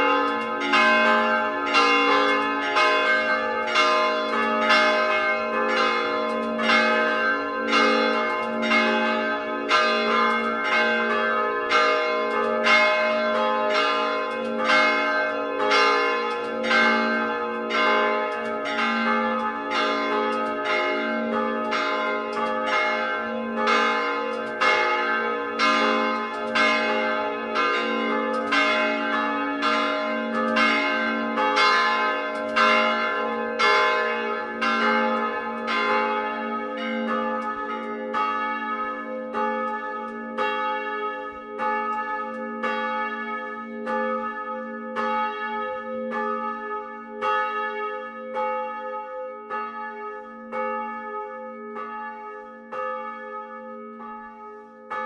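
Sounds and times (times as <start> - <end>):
church bells ringing: 0.0 - 55.0.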